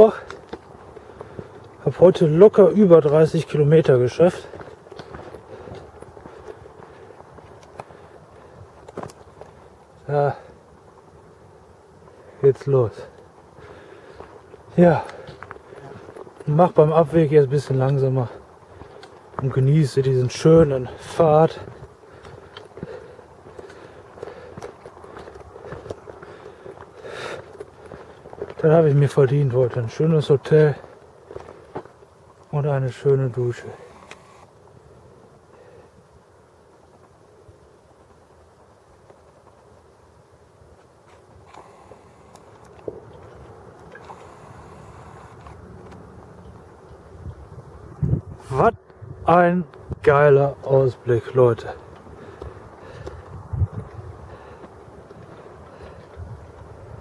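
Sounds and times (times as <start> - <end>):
man talking: 0.0 - 0.3, 1.8 - 4.6, 10.0 - 10.5, 12.4 - 13.2, 14.7 - 18.4, 19.4 - 21.8, 28.6 - 30.9, 32.5 - 34.0, 48.4 - 51.9
footsteps on gravel: 0.0 - 11.2, 12.0 - 34.6, 40.6 - 57.0
wind against microphone: 41.5 - 50.2, 51.8 - 57.0.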